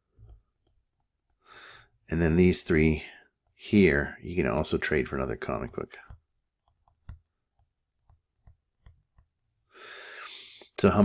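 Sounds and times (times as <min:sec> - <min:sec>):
stylus tapping on drawing tablet: 0:05.6 - 0:09.5.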